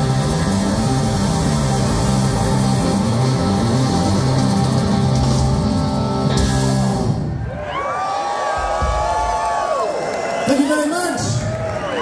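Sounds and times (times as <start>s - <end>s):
loud rock music: 0.0s - 7.5s
crowd cheering and whistling: 5.8s - 12.0s.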